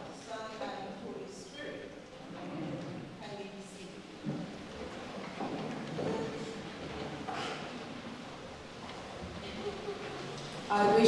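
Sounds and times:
faint murmured voices: 0.8s - 11.0s
congregation shuffling in pews: 1.3s - 10.7s.

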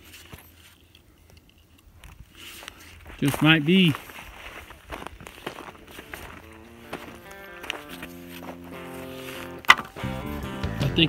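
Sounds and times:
footsteps on gravelly ground: 0.0s - 11.0s.

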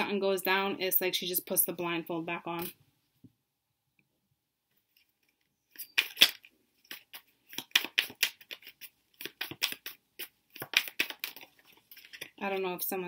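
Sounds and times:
cards being shuffled: 4.9s - 12.4s.

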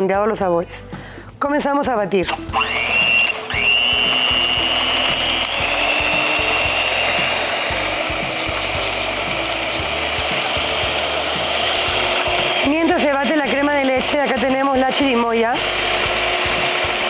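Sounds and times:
stand mixer whining: 2.3s - 17.0s.

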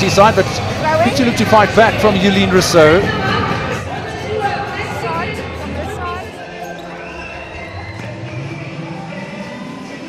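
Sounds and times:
crowd voices echoing: 0.0s - 10.0s.

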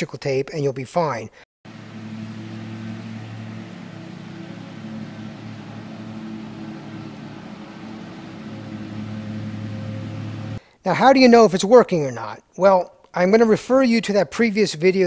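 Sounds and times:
low machine hum: 1.7s - 10.6s.

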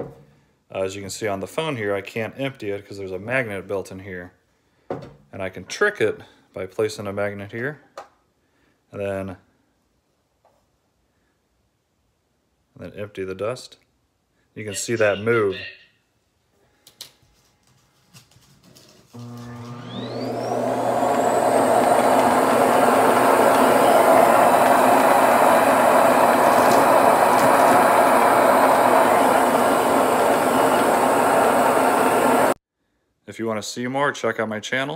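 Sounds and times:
suction motor whining loudly: 19.2s - 32.6s.

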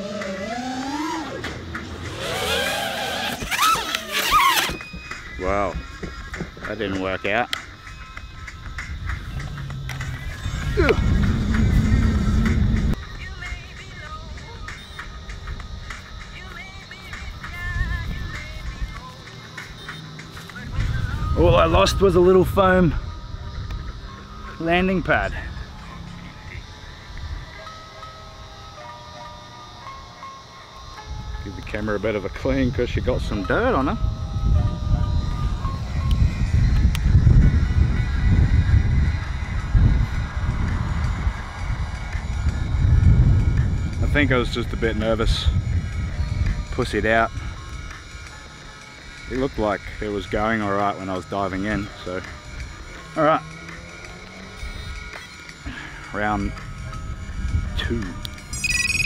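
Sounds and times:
background music: 0.0s - 59.0s
wind buffeting microphone: 8.3s - 13.0s, 32.6s - 47.9s
low rumble: 9.1s - 13.0s.

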